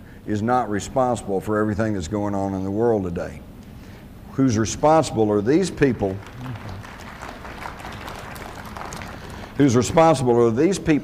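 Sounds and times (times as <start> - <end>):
room hiss: 0.0 - 11.0
faint audience rustling: 5.8 - 10.2.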